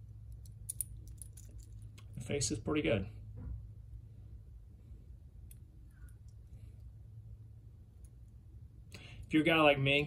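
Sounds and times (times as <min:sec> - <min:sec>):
steady low hum: 0:00.0 - 0:10.0
watch bracelet clicking and clinking: 0:00.2 - 0:02.2.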